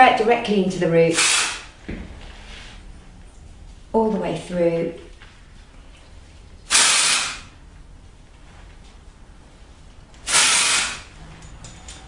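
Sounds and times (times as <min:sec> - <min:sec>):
aerosol spray hissing: 0:06.7 - 0:07.5.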